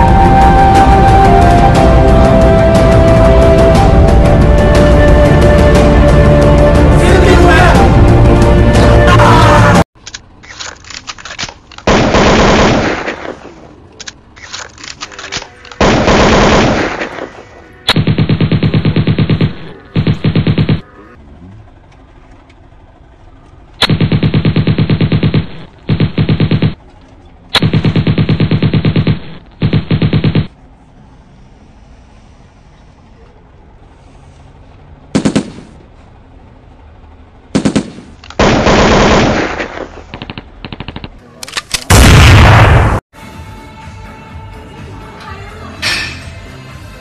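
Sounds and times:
machine-gun-like fire bursts: 11.8s - 13.6s, 15.8s - 20.8s, 23.8s - 26.8s, 27.6s - 30.6s, 35.1s - 35.8s, 37.5s - 41.2s.

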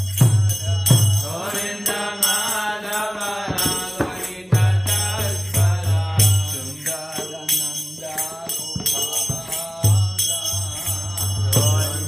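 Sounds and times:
hand cymbals jingling: 0.0s - 12.0s
person chanting a melody: 0.6s - 12.0s
drum beat: 3.4s - 6.6s.

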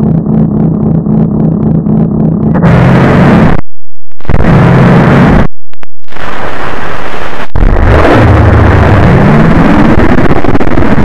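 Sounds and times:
low drone: 0.0s - 3.6s
loud distorted crackling noise: 0.0s - 11.0s.

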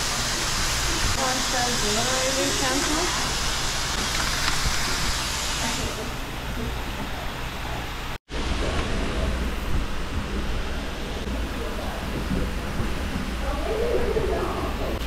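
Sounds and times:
hose spraying water: 0.0s - 15.0s.

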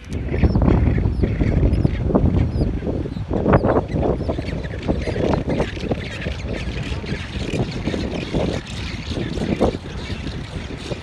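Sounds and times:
wind buffeting microphone: 0.0s - 11.0s
penguin colony calling: 0.3s - 11.0s.

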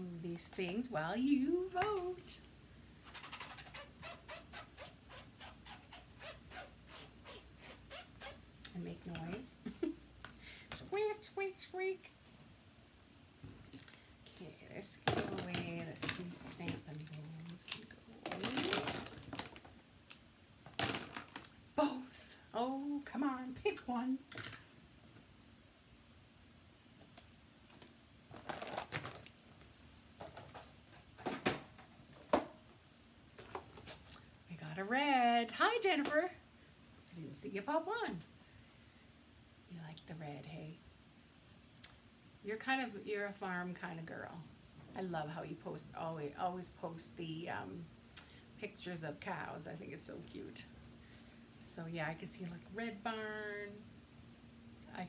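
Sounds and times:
squeaky rubbing strokes: 3.0s - 8.4s.

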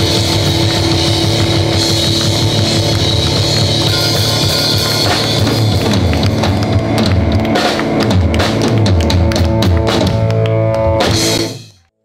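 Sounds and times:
live blues band: 0.0s - 11.6s
drum kit hits: 0.0s - 11.8s.

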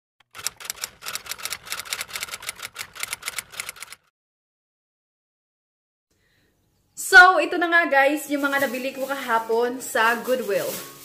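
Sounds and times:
typewriter key clacks: 0.3s - 4.0s.

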